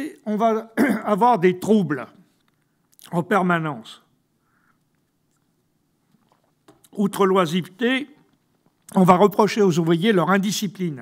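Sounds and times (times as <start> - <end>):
man speaking: 0.0 - 2.2, 3.0 - 4.1, 6.9 - 8.2, 8.9 - 11.0.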